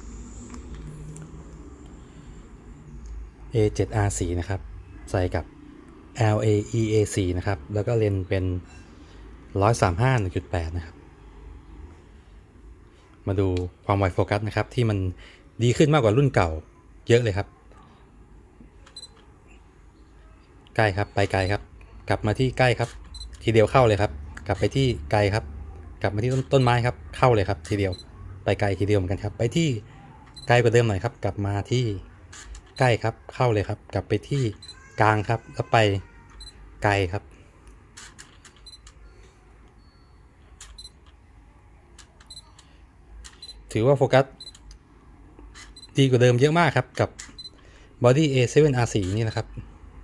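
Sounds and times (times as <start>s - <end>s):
camera autofocus whir and clicks: 0.1s - 2.0s, 22.8s - 23.4s, 26.2s - 26.8s, 27.5s - 28.0s, 32.3s - 32.8s, 37.9s - 39.9s, 40.6s - 41.2s, 42.0s - 43.6s, 45.5s - 45.9s, 48.9s - 49.4s
high focus beep: 38.6s - 41.0s.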